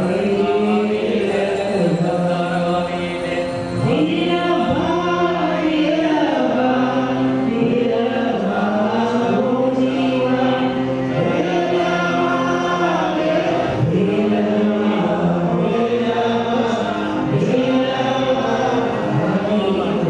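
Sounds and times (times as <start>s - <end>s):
group chanting mantras: 0.0s - 20.0s.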